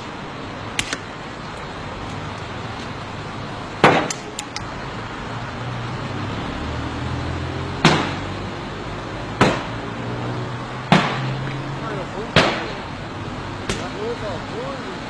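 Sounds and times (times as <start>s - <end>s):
street traffic: 0.0s - 15.0s.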